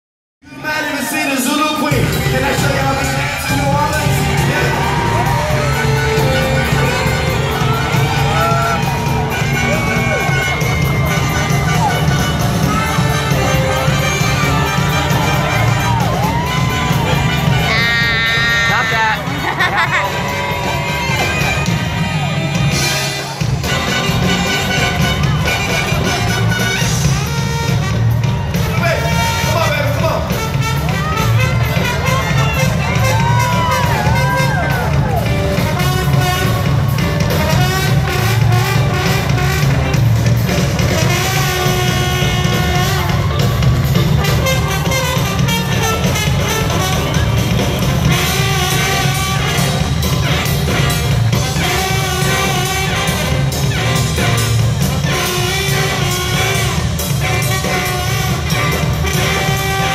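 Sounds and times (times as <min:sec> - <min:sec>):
live band music: 0:00.5 - 0:59.9
heavy bass: 0:01.9 - 0:59.9.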